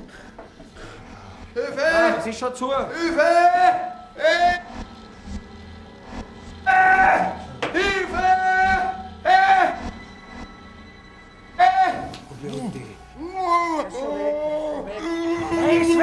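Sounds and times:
quiet sustained music: 0:00.0 - 0:16.0
man shouting for help: 0:11.6 - 0:12.2.

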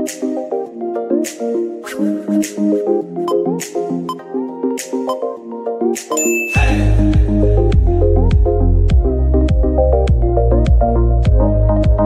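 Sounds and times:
electronic workout music: 0:00.0 - 0:12.0
high bell-like timer ding: 0:06.2 - 0:07.0.

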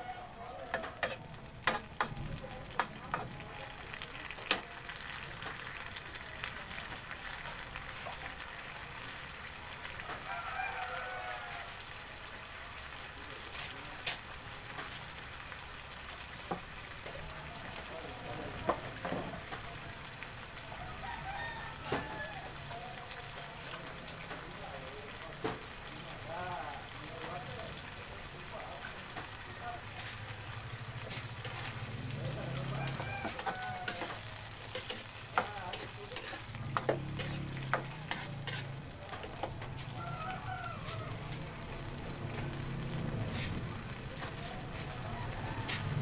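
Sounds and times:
food sizzling in a wok: 0:00.0 - 0:46.0
metal spatula clanking on pan: 0:00.7 - 0:03.4, 0:32.8 - 0:39.6.

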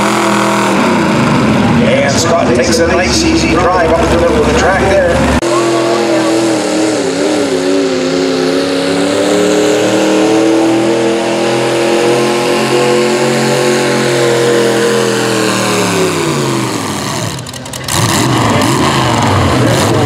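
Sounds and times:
tractor engine at full throttle: 0:00.0 - 0:20.0.

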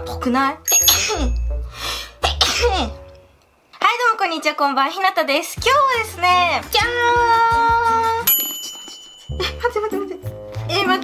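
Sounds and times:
woman coughing: 0:02.2 - 0:02.9
woman speaking: 0:03.8 - 0:08.3, 0:09.4 - 0:11.0.

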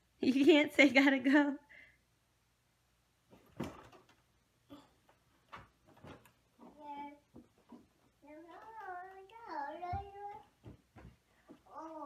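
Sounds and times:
toddler babbling: 0:08.2 - 0:10.5, 0:11.6 - 0:12.0.

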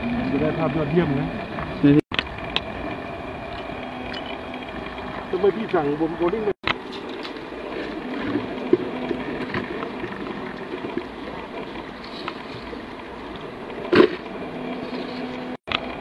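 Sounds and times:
engine hum: 0:00.0 - 0:16.0.

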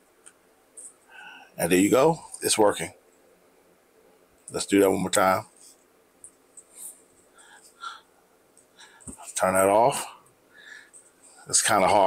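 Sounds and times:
soft breaths: 0:00.8 - 0:01.6, 0:06.6 - 0:11.6.

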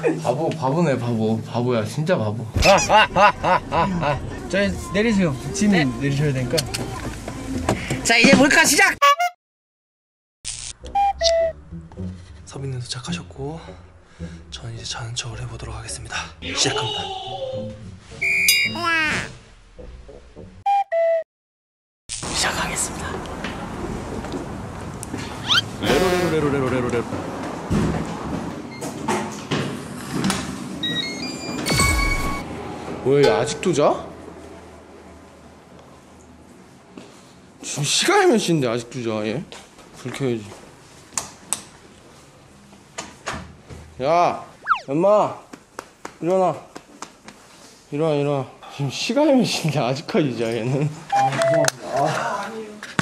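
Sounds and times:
rising electronic beeps: 0:10.9 - 0:11.8, 0:44.6 - 0:44.9
ringing tone: 0:18.3 - 0:18.8
steady tone: 0:44.6 - 0:44.9
falling pitched tone: 0:44.6 - 0:45.0.

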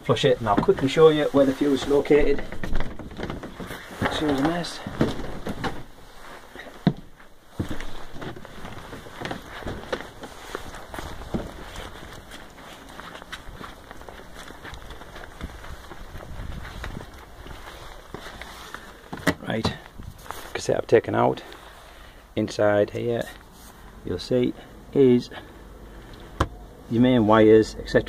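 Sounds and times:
footsteps on brick paving: 0:00.4 - 0:20.6.

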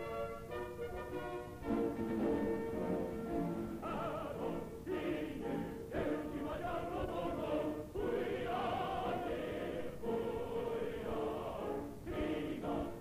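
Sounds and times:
choir singing: 0:02.2 - 0:13.0.

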